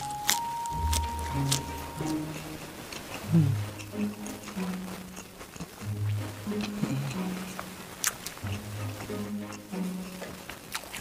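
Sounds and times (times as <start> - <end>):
chewing crispy food: 0.0 - 11.0
man humming: 3.2 - 3.8.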